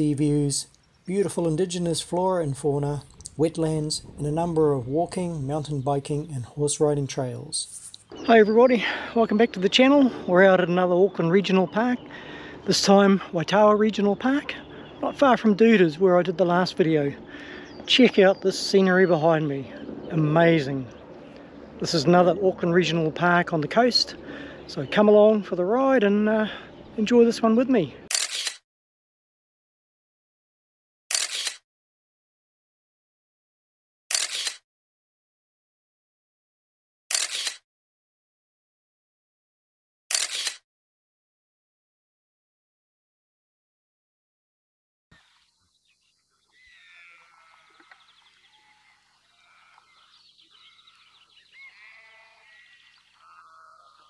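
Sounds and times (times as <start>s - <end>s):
birds chirping and trilling: 0.0s - 28.1s, 45.2s - 54.0s
camera shutter click: 28.1s - 28.6s, 31.1s - 31.6s, 34.1s - 34.6s, 37.1s - 37.6s, 40.1s - 40.6s
long drawn animal calls: 46.2s - 54.0s.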